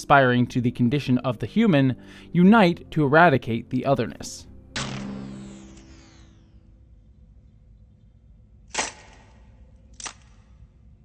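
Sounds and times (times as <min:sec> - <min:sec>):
low steady hum: 0:02.0 - 0:11.0.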